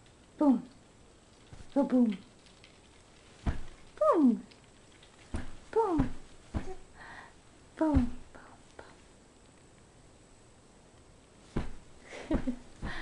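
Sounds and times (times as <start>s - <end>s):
soft thumps: 3.4s - 3.9s, 5.3s - 6.9s, 7.8s - 8.4s, 11.4s - 13.0s.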